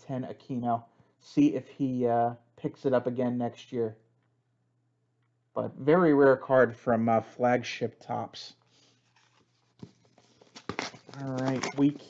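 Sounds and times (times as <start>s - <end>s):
cards clicking and rustling: 9.0s - 12.0s.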